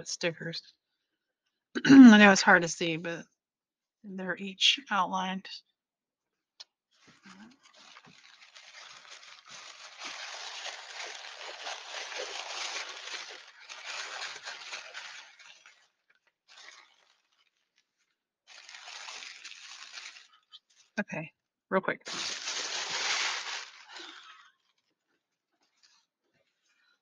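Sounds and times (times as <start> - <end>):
paper rustling and crinkling: 7.0 - 20.9, 22.1 - 24.2.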